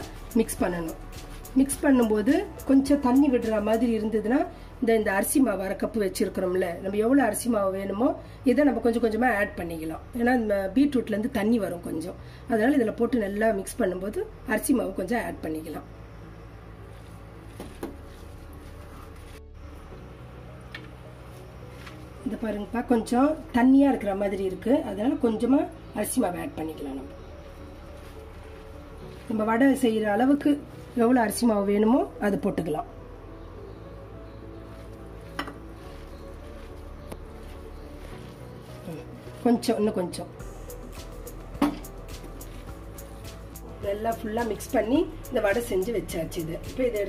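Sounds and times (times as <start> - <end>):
faint music: 0.0 - 47.0
hand mixing wet batter: 35.6 - 40.1.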